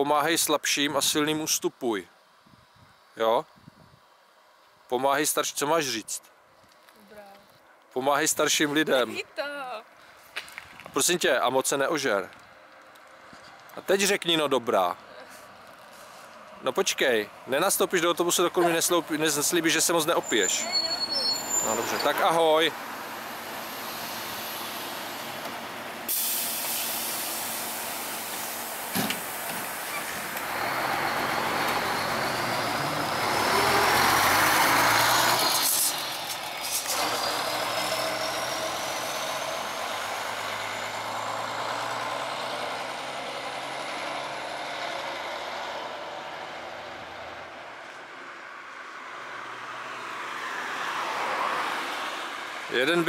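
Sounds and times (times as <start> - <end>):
bus engine whining: 14.5 - 48.3
car passing close: 15.2 - 53.0
air brakes hissing: 26.1 - 30.3.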